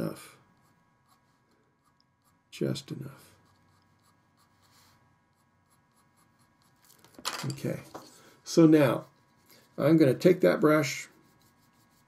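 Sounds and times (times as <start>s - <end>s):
pencil scratching on paper: 0.0s - 7.0s, 8.6s - 12.0s.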